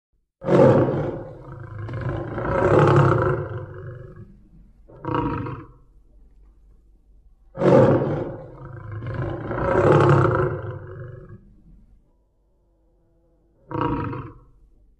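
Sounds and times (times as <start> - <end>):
big cat roaring: 0.4 - 4.3, 4.9 - 5.8, 7.5 - 11.8, 12.6 - 14.6.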